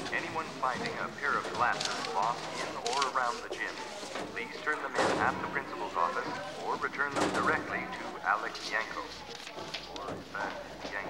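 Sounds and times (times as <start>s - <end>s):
children's voices chattering: 0.0s - 11.0s.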